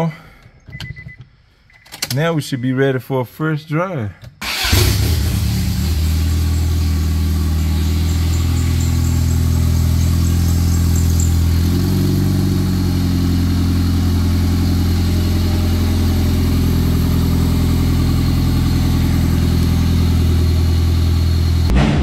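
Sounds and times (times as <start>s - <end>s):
car engine idling: 4.4s - 21.7s.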